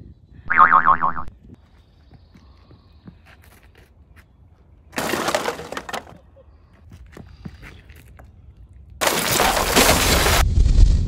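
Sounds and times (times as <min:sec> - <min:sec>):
cartoon boing sound effect: 0:00.5 - 0:01.3.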